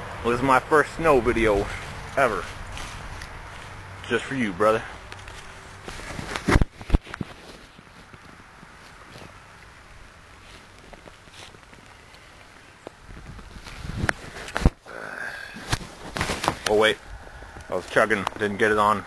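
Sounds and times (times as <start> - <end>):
faint outdoor noise: 0.0 - 19.0.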